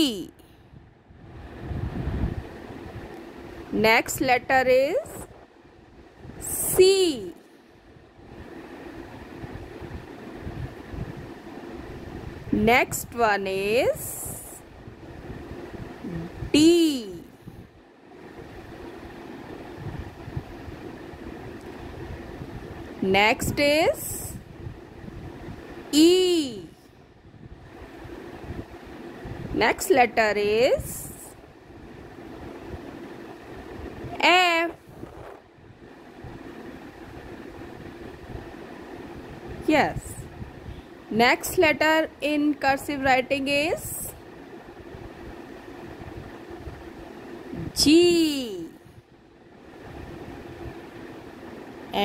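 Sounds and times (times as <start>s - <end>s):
low room hum: 0.0s - 52.0s
steady background hiss: 0.0s - 52.0s.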